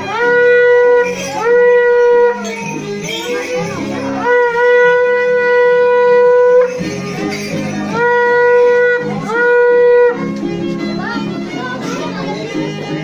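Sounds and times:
animal-horn trumpet blasts: 0.0 - 10.3
music with low notes: 0.0 - 13.0.

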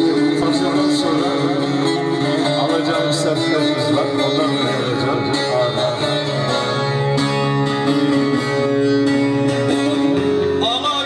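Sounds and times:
long-necked lute plucked melody: 0.0 - 10.6.

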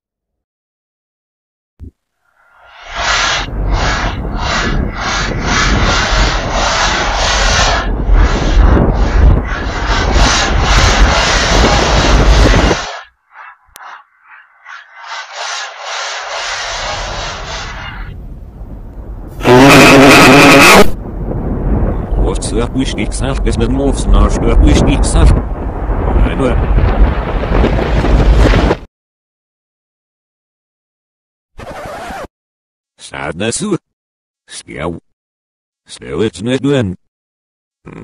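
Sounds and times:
harsh rasping noise: 2.6 - 18.1, 19.4 - 21.0
loud harsh tone: 19.4 - 21.0.

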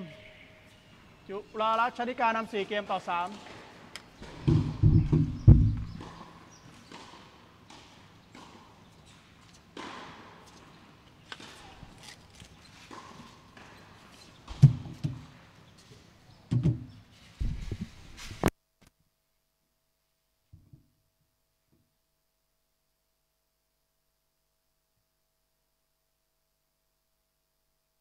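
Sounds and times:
heavy low thumps: 4.5 - 6.0.

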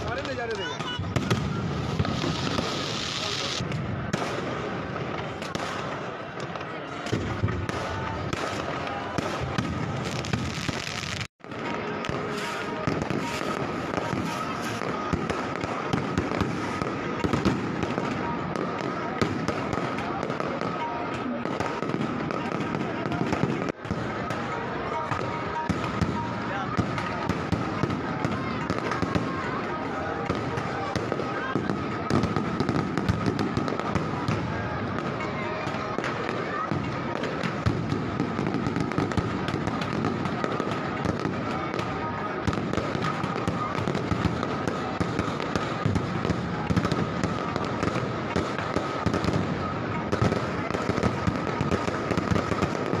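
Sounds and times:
fireworks crackling and popping: 0.0 - 53.0
large crowd voices: 0.0 - 53.0.

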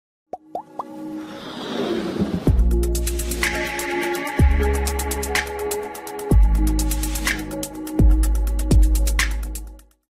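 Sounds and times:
electronic music: 2.5 - 9.8.

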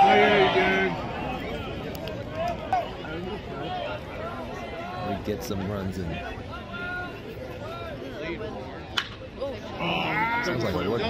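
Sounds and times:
crowd chatter: 0.0 - 11.0
spectators talking: 0.0 - 11.0.

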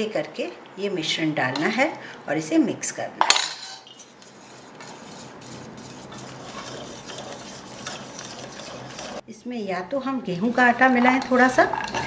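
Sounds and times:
whisk scraping metal bowl: 3.9 - 9.2, 10.3 - 12.0.

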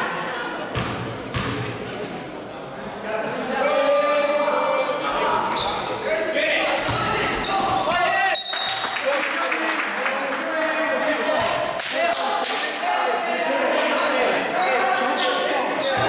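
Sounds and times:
voices shouting in echoing gym: 0.0 - 9.4, 10.1 - 16.0
basketball bouncing on court: 0.7 - 1.6.

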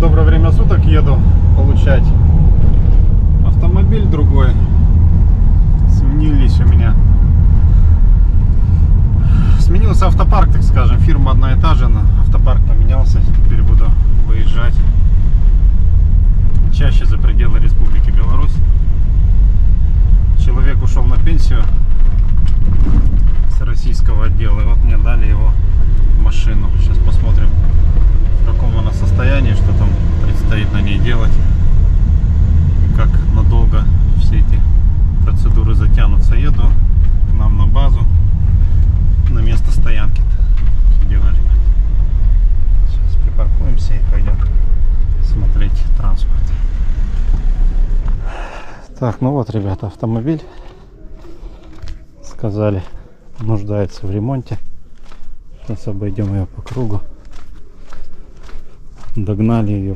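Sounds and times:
car road and engine rumble: 0.0 - 59.9.

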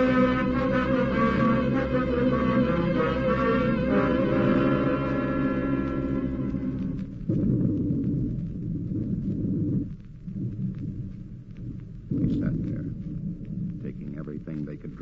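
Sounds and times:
dramatic orchestral music: 0.0 - 7.0
loud low rumbling: 0.0 - 15.0.

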